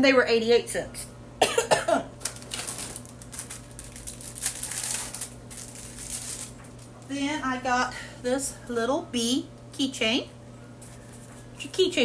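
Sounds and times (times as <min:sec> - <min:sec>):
woman coughing: 0:01.4 - 0:02.1
rustling and handling noise: 0:02.2 - 0:07.2, 0:10.6 - 0:12.0.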